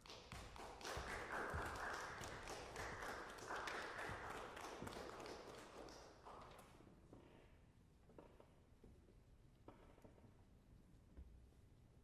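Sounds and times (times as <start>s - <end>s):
audience applause: 0.8s - 5.8s.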